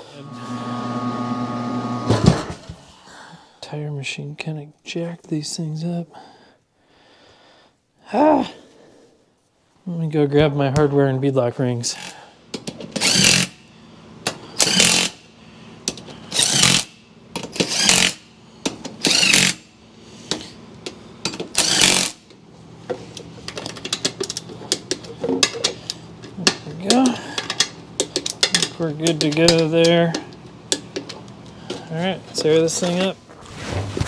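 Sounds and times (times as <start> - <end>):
cordless impact driver bursts: 13.0 - 13.6, 14.6 - 15.2, 16.3 - 16.9, 17.6 - 18.2, 19.0 - 19.6, 21.6 - 22.2.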